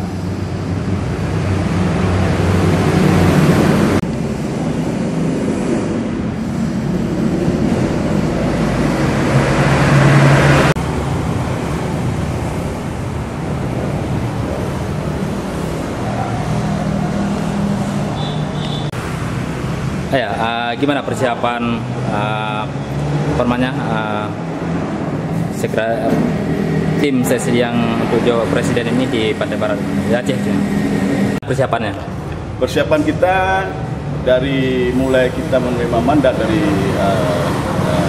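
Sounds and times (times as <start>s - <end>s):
road traffic passing: 0.0s - 38.0s.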